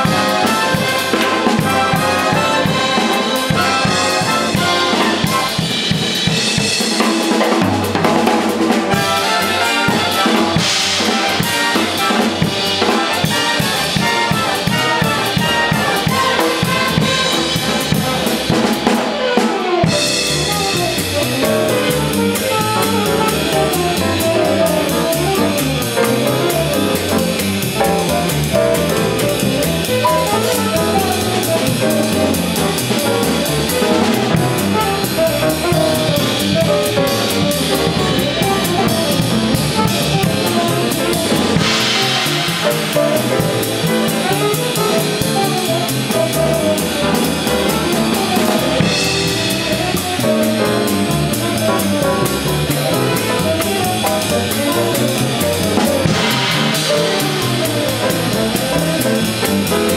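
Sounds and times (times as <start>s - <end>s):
big band playing swing jazz: 0.0s - 59.9s
sticks on snare and cymbals: 0.0s - 59.9s
stepping bass line: 19.8s - 59.9s.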